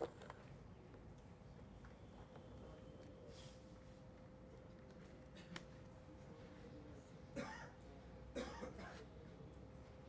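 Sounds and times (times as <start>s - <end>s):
man coughing: 7.4s - 7.8s, 8.4s - 9.0s.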